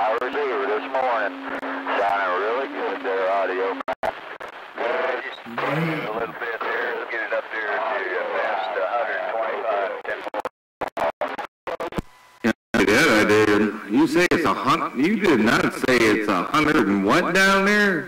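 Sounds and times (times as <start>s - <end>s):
talk over radio: 0.0s - 17.8s.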